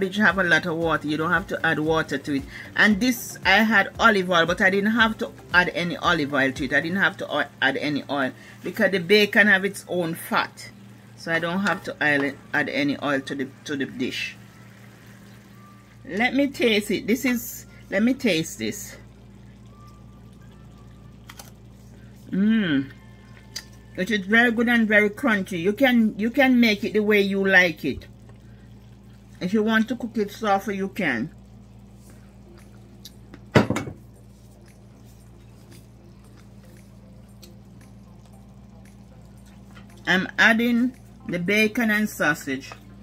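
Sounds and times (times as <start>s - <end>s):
steady low hum: 0.0s - 43.0s
cabbage simmering and sizzling: 3.8s - 23.9s, 26.6s - 40.3s.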